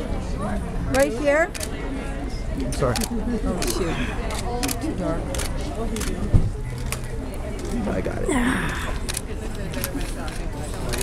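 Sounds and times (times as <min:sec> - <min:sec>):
background chatter: 0:00.0 - 0:11.0
camera shutters clicking: 0:02.7 - 0:06.2.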